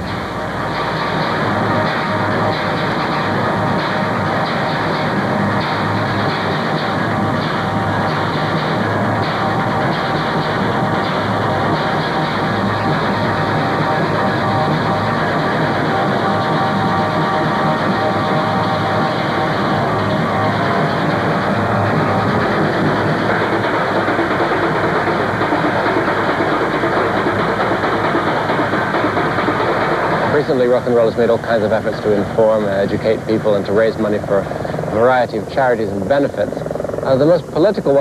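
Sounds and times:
industrial music with metal percussion: 0.0s - 38.0s.

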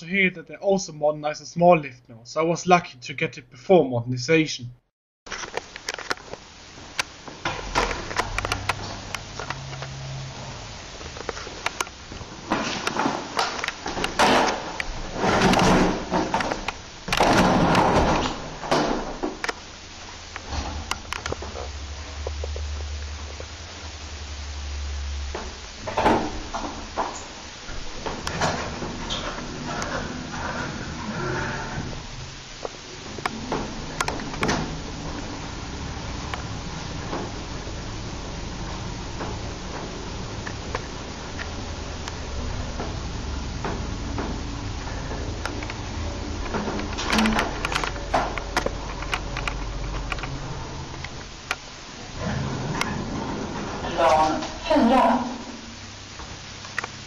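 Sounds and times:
lift doors clattering and knocking: 12.3s - 19.5s, 25.8s - 32.0s, 41.2s - 49.4s.

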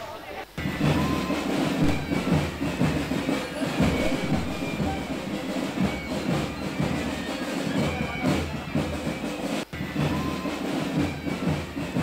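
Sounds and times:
bagpipes: 0.6s - 12.0s
marching drums: 0.6s - 12.0s.

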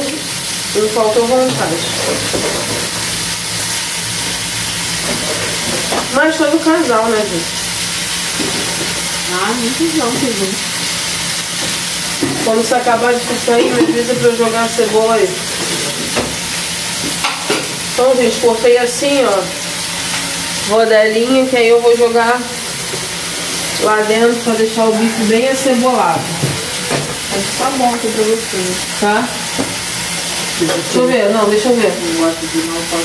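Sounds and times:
steaks sizzling in a pan: 0.0s - 33.0s.

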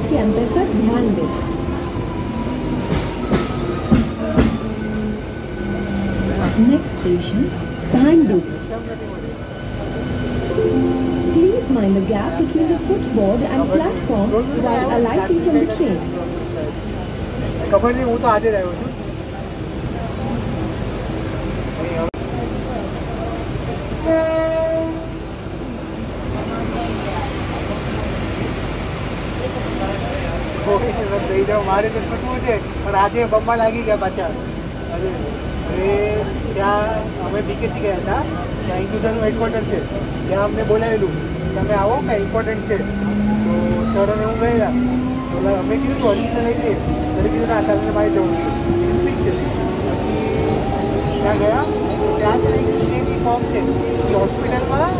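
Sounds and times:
train running rumble: 0.0s - 54.9s
train horn blast: 24.0s - 25.4s.

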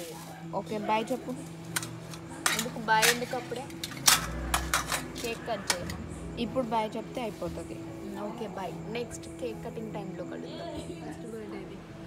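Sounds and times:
steel plates and bowls clinking: 1.0s - 6.1s.

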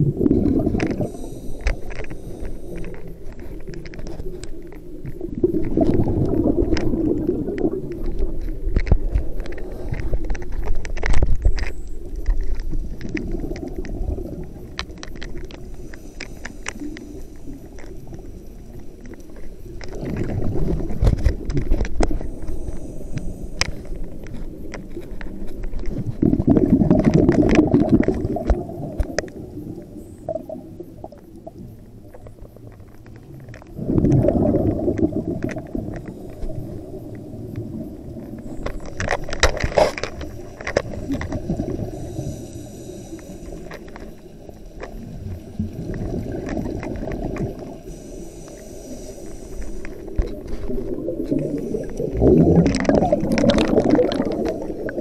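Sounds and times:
exhaled bubbles underwater: 0.0s - 16.0s, 19.7s - 55.0s
small clicks: 0.6s - 55.0s.

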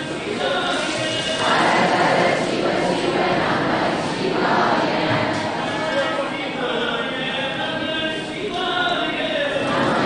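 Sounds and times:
voices chanting together: 0.0s - 7.2s, 9.5s - 10.0s
crowd hubbub: 0.0s - 10.0s.

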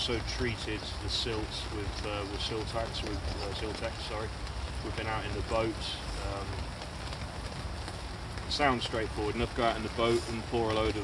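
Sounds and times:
rain pattering on an umbrella: 0.0s - 11.0s
wind rumble on microphone: 0.0s - 11.0s.

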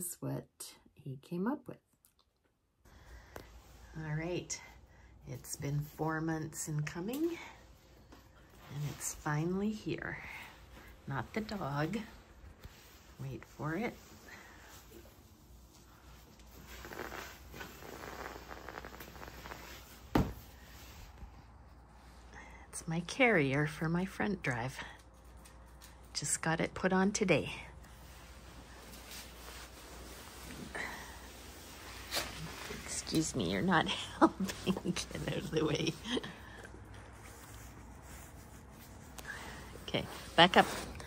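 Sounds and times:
faint steady background noise: 0.0s - 41.0s
soft shuffling: 5.4s - 22.3s, 27.8s - 41.0s.

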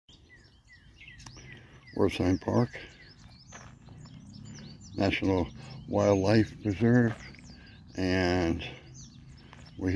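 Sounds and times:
songbirds chirping: 0.1s - 9.9s.

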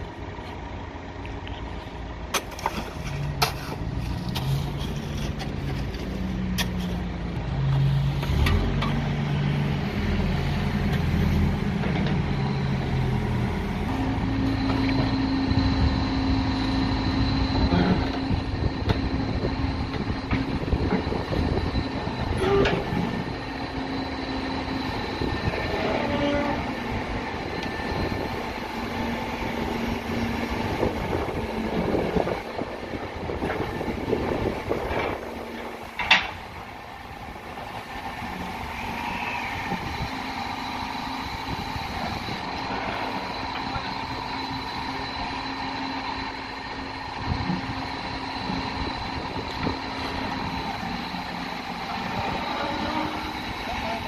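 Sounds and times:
diesel engine running: 0.0s - 54.0s.

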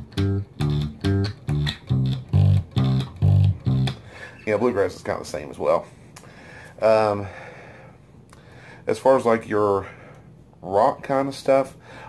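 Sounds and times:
electric bass line: 0.0s - 4.6s.

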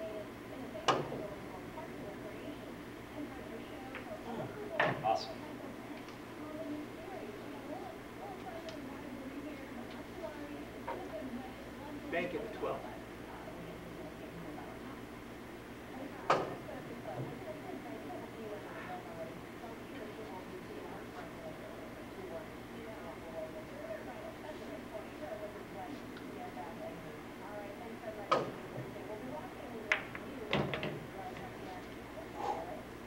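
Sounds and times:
cue striking ball click: 29.9s - 30.9s.

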